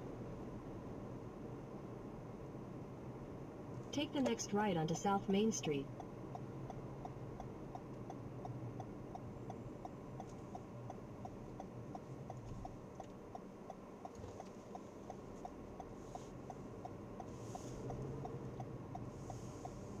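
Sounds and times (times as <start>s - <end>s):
engine and road noise drone: 0.0s - 20.0s
turn signal ticking: 4.0s - 20.0s.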